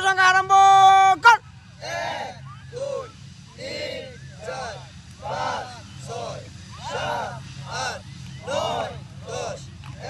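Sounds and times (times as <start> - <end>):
men shouting rhythmic calls: 0.0 - 10.0.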